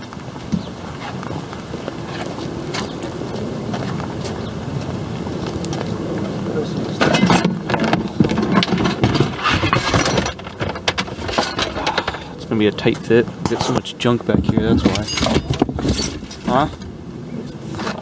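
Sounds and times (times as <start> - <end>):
rustling footsteps: 0.0 - 18.0
scrap metal clanking: 7.0 - 12.4, 13.5 - 16.8.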